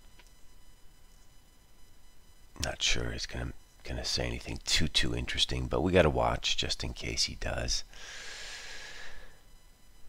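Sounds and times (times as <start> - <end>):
man breathing in: 7.9 - 9.5.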